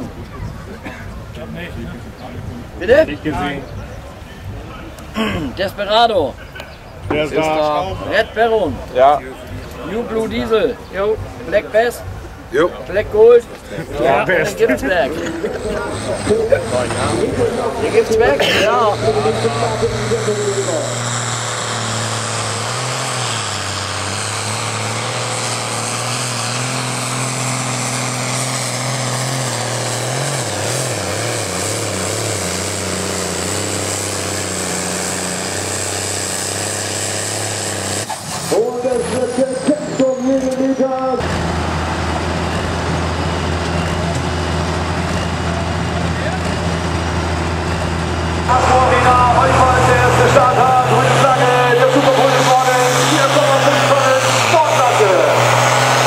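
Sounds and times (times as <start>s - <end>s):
tractor diesel engine under load: 0.0s - 56.0s
tractor engine idling: 0.0s - 56.0s
voice over loudspeakers: 15.1s - 21.0s, 48.5s - 55.5s.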